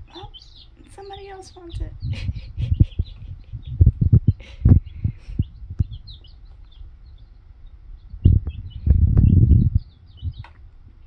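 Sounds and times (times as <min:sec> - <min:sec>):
baby chicks peeping: 0:00.0 - 0:11.0
low thumps and knocks: 0:01.9 - 0:06.8, 0:08.0 - 0:10.6.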